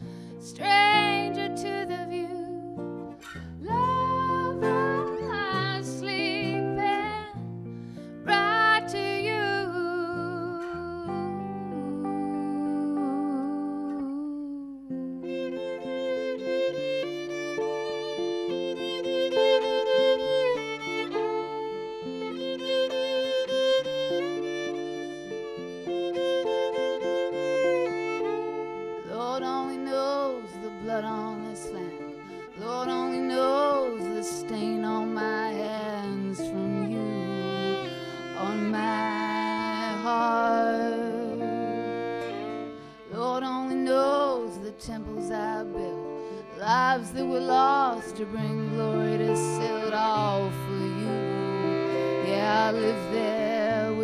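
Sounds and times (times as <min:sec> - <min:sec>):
acoustic guitar: 0:00.0 - 0:54.0
electric guitar: 0:00.0 - 0:54.0
fiddle playing folk melody: 0:00.0 - 0:54.0.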